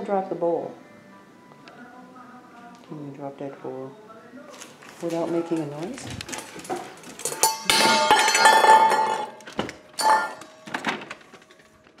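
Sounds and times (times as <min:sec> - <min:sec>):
metal dog bowl clattering: 0:05.0 - 0:10.5
metal bowl clang: 0:06.3 - 0:10.7.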